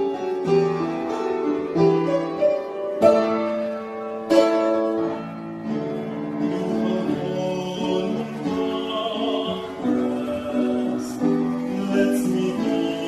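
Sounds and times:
upright piano: 0.0 - 13.0
boy singing: 6.6 - 13.0.

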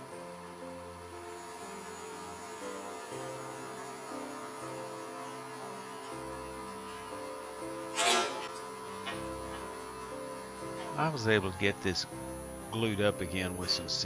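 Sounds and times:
background music: 0.0 - 14.0
steady hum: 0.0 - 14.0.

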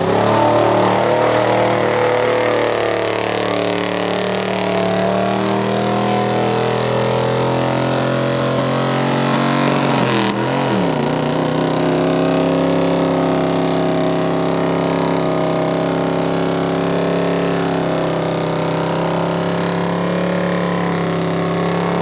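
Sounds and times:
truck engine at high revs: 0.0 - 22.0.

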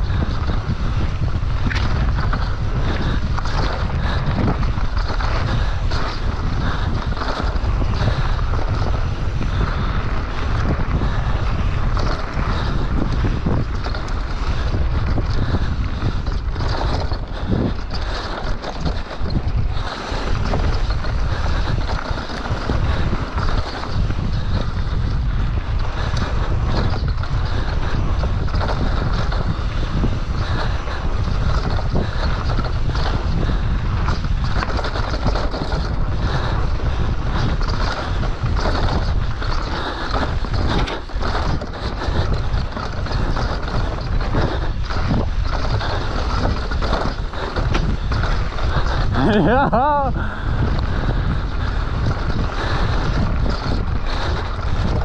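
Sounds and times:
bike knocks and rattles: 0.0 - 55.0
tyre noise on dirt: 0.0 - 55.0
wind buffeting microphone: 0.0 - 55.0.

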